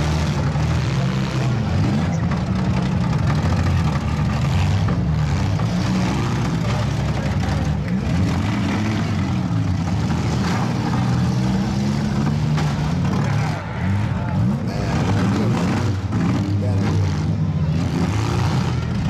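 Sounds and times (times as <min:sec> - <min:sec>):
car engines revving: 0:00.0 - 0:19.0.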